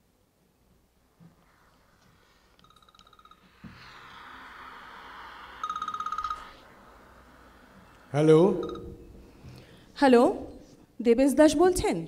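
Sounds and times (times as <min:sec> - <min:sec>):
faint hiss: 0:00.0 - 0:02.8, 0:03.4 - 0:10.0
phone ringtone beeping trill: 0:05.6 - 0:06.6, 0:08.5 - 0:09.1.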